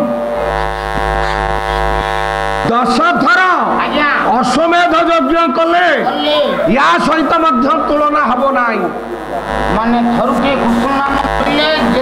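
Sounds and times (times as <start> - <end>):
low hum: 0.0 - 6.0, 6.6 - 12.0
steady drone: 0.0 - 12.0.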